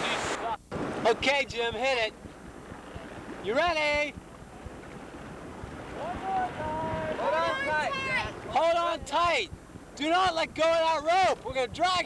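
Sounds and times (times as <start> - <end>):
wind hiss on microphone: 0.0 - 12.0.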